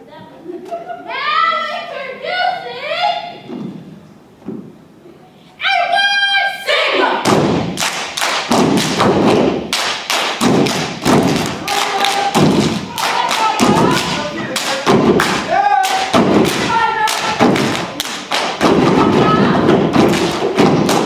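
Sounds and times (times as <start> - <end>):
rhythmic stomping and clapping: 7.2 - 21.0
voices chanting: 11.4 - 20.8.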